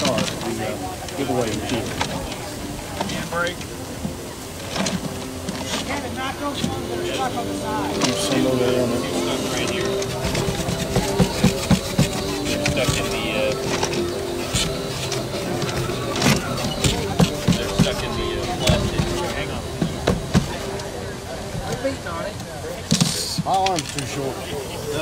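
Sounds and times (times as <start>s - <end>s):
background music: 0.0s - 22.0s
crowd chatter: 0.0s - 25.0s
raffle drum turning with tickets: 0.0s - 25.0s.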